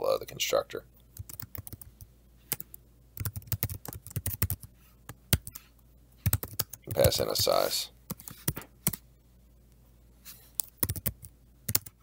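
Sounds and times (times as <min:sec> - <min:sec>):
computer keyboard typing: 0:01.1 - 0:04.7, 0:05.3 - 0:05.6, 0:06.2 - 0:09.0, 0:10.6 - 0:12.0.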